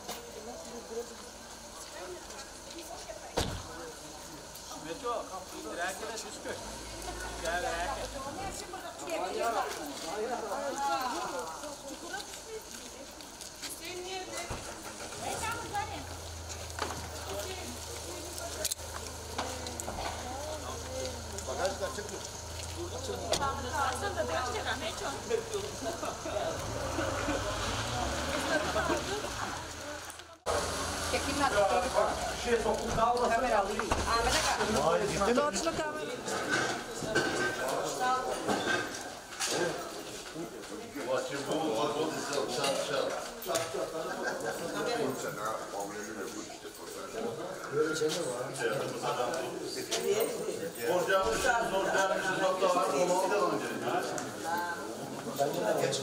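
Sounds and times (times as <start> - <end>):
people talking: 0.0 - 16.2, 16.9 - 38.8.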